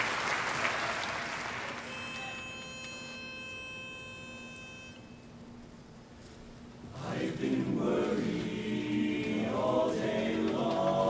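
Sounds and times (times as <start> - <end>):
men's chorus singing a cappella: 6.9 - 11.0.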